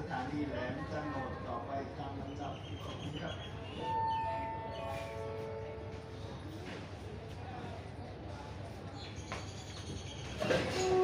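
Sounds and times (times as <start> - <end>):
descending public-address chime: 3.7 - 6.2.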